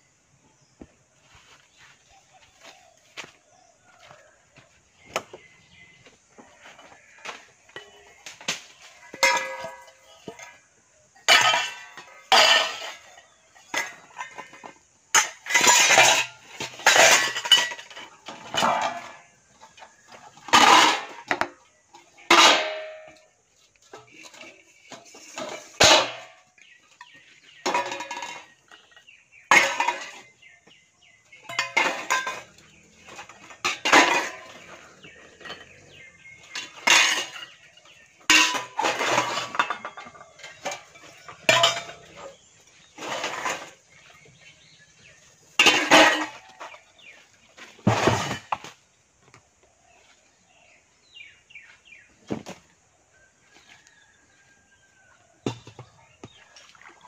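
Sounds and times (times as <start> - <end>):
metal pots and utensils clattering: 5.0 - 48.8.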